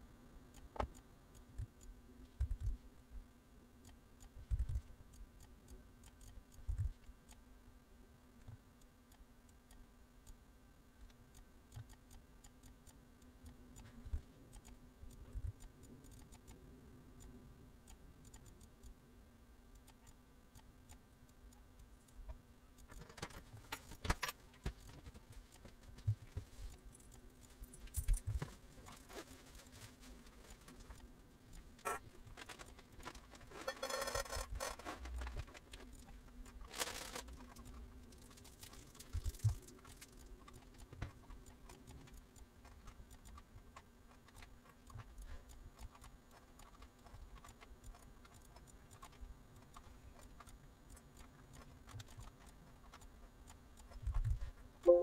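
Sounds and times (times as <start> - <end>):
faint steady hum: 0.0 - 55.0
computer mouse clicks: 0.5 - 2.8, 3.8 - 7.4, 11.0 - 19.0, 19.7 - 29.8, 30.4 - 55.0.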